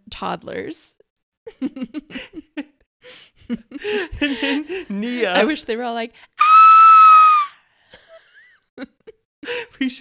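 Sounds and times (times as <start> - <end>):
person screaming high-pitched: 6.4 - 7.6.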